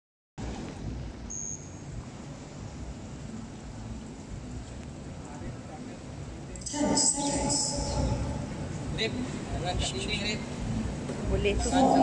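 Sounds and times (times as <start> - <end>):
low rumble of indoor pool ambience: 0.4 - 12.0.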